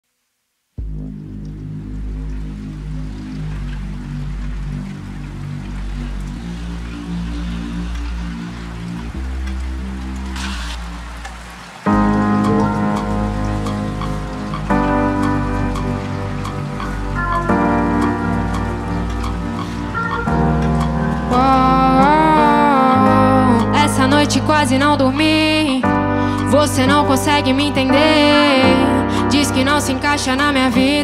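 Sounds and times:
slow r and b band chords: 11.9 - 31.0.

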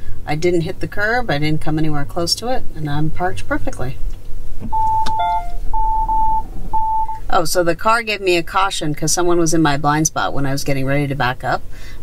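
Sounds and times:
long warning beeps: 4.7 - 7.2
short low chime: 4.7 - 7.2.

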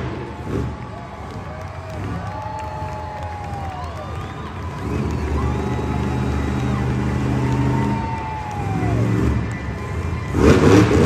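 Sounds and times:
monster truck engine revving high: 0.0 - 11.0.

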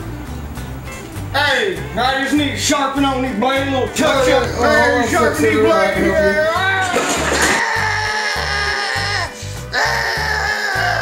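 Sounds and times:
music with repeating bass line: 0.0 - 6.8
man wailing in pain: 4.2 - 6.8, 7.4 - 11.0.

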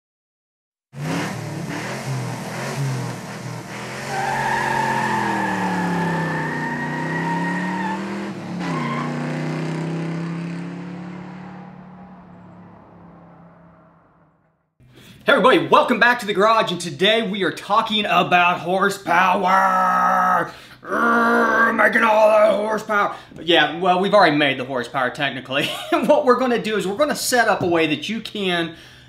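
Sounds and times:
car engine revving: 1.0 - 14.4
tyre squeal: 4.0 - 9.2.

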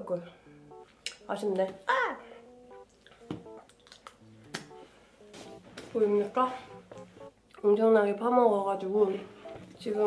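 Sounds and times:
soft plucked background music: 0.0 - 10.0.

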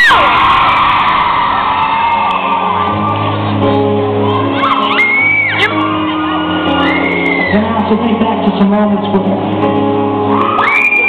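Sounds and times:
shouts: 0.0 - 3.5, 4.2 - 7.8, 10.3 - 11.0
audience screaming: 0.0 - 8.0, 10.2 - 11.0
live piano held notes: 2.4 - 11.0.

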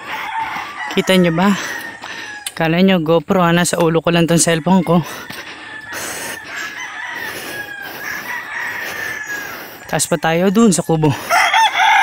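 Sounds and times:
rooster crowing: 0.0 - 2.5, 4.4 - 9.8, 11.0 - 12.0.

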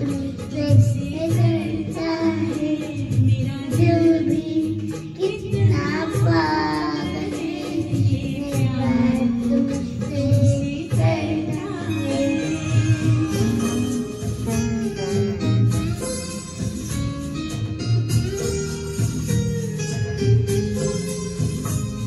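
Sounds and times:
girl singing into microphone: 0.0 - 16.0
karaoke backing track: 0.0 - 22.0.

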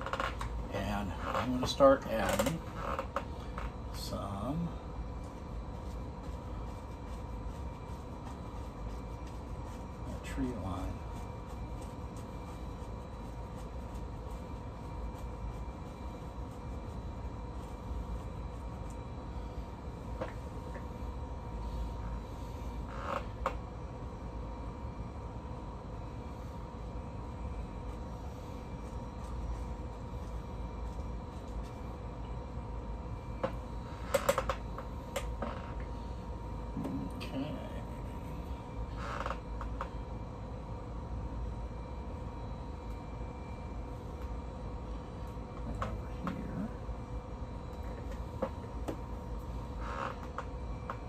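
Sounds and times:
paint brush scraping on canvas: 0.0 - 23.4, 27.4 - 32.1
low room hum with faint whine: 0.0 - 51.0.

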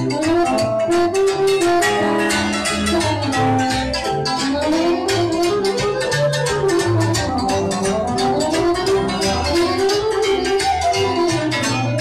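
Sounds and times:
party band music over speakers: 0.0 - 12.0.

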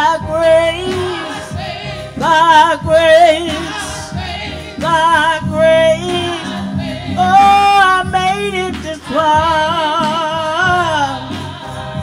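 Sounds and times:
instrumental accompaniment: 0.0 - 12.0
person singing with vibrato: 0.0 - 12.0.

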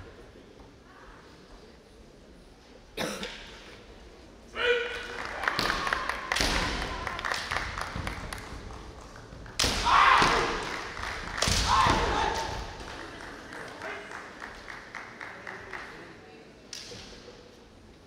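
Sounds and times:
people shouting yells: 4.6 - 7.0, 9.6 - 10.7, 11.5 - 12.8.

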